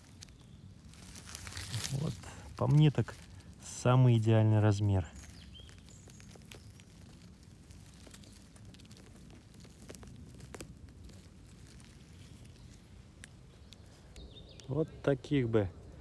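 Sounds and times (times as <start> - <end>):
rustling and crackling of forest litter: 0.0 - 16.0.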